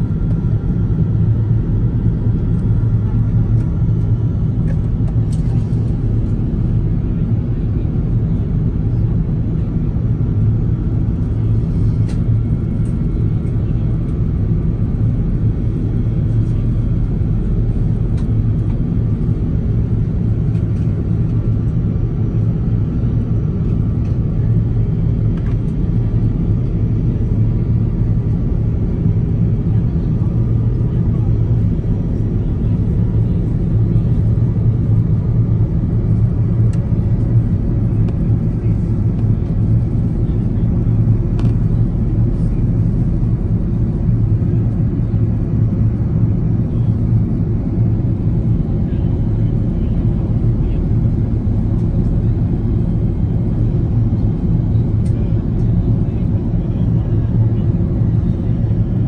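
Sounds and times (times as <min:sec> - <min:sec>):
airplane engines rumbling: 0:00.0 - 0:59.0.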